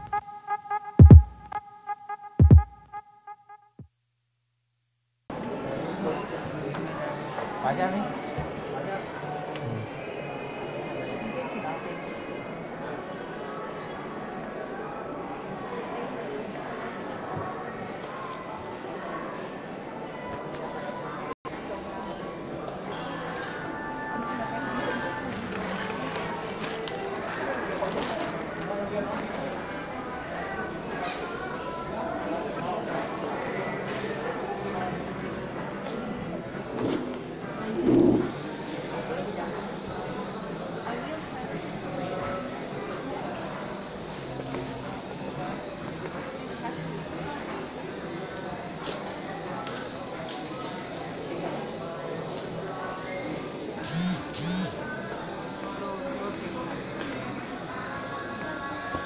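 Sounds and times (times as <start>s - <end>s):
background music: 0.0s - 3.8s
background chatter: 5.3s - 59.0s
indistinct voices: 29.2s - 39.4s.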